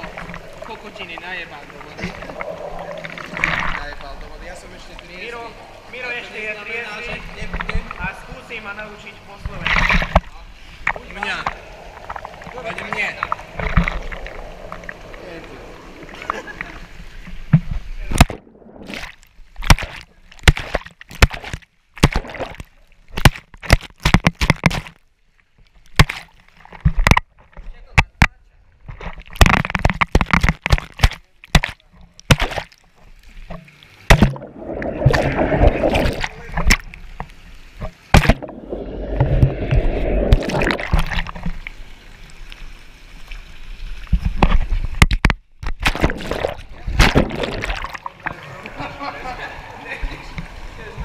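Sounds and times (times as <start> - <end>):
water bubbling in whirlpool bath: 0.0 - 20.0, 34.0 - 37.3, 38.0 - 42.3, 45.9 - 51.0
water splashing: 0.0 - 25.0, 28.9 - 51.0.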